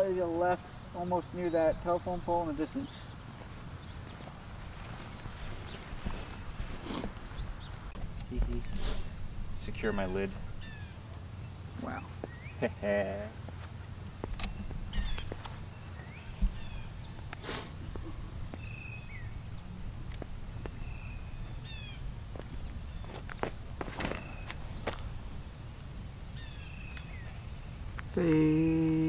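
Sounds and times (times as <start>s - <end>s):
low steady outdoor rumble: 0.0s - 29.0s
small birds chirping: 0.0s - 29.0s.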